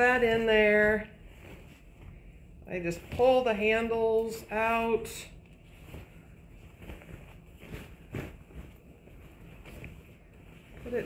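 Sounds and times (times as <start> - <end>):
fabric bag rustling: 0.0 - 11.0.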